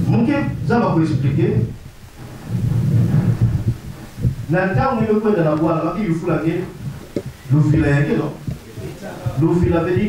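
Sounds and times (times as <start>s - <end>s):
muffled rumble on microphone: 0.0s - 10.0s.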